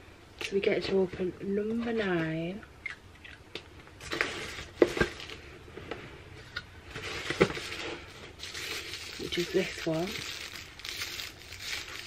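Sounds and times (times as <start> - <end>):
cardboard and paper rustling: 6.9 - 12.0.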